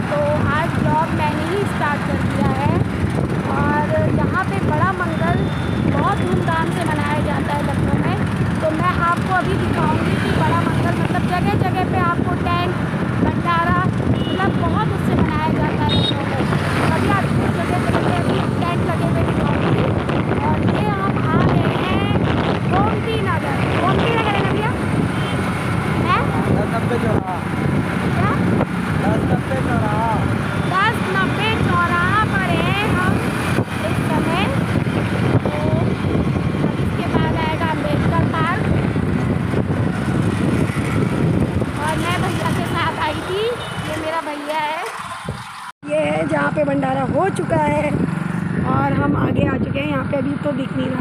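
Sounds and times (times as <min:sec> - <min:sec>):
road traffic noise: 0:00.0 - 0:51.0
wind buffeting microphone: 0:00.0 - 0:51.0.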